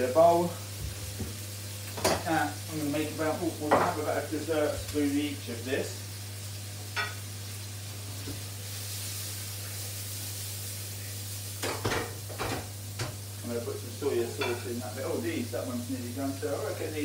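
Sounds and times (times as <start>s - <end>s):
food sizzling in pans: 0.0s - 17.0s.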